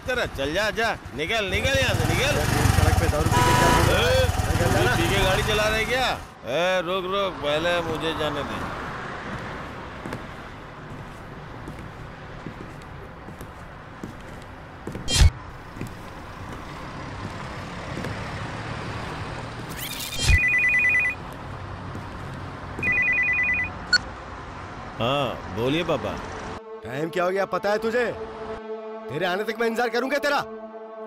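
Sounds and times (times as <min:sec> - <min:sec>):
street traffic noise: 0:00.0 - 0:28.7
phone ringing electronic warble: 0:19.8 - 0:21.2, 0:22.8 - 0:24.0.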